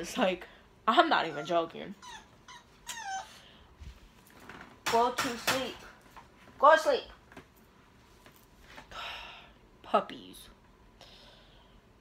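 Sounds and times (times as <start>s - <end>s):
puppy whining: 1.1s - 3.7s.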